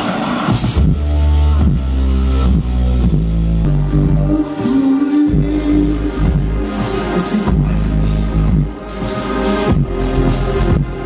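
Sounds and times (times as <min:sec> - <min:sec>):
steady chords: 0:00.0 - 0:11.0
deep bass line: 0:00.6 - 0:11.0.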